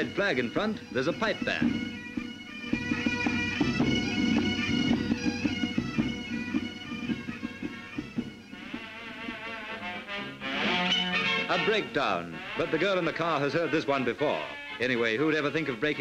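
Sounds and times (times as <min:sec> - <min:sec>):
bagpipes playing over drones: 0:00.0 - 0:16.0
drum beats: 0:00.0 - 0:16.0.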